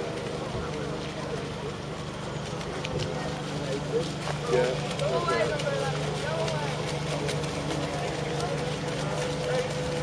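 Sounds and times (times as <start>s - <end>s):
model boat motor hum: 0.0s - 10.0s.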